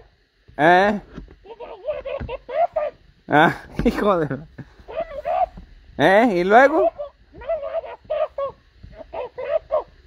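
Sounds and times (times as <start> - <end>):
high-pitched voice babbling: 1.5 - 3.0, 4.9 - 5.6.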